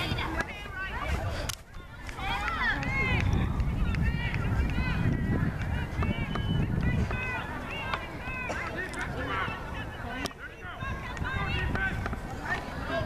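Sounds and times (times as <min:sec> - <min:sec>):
distant shouting voices: 0:00.0 - 0:13.0
wind on microphone: 0:00.0 - 0:13.0.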